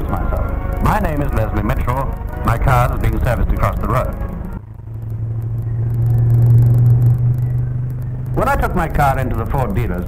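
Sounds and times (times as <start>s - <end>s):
car engine approaching: 0.0s - 10.0s.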